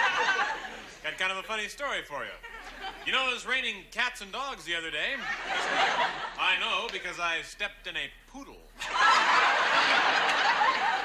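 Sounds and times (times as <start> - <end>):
studio audience laughing: 0.0 - 1.1, 2.4 - 3.2, 5.1 - 6.6, 8.8 - 11.0.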